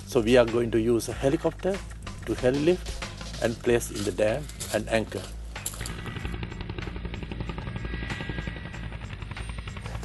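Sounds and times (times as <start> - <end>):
helicopter rotor beating: 0.0 - 10.0.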